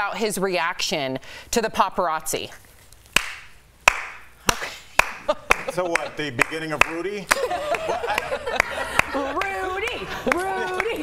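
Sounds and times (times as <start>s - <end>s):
slow hand claps: 3.2s - 11.0s.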